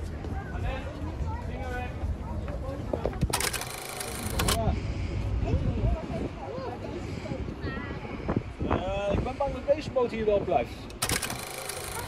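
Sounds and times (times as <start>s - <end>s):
wind rumbling on microphone: 4.7s - 10.6s.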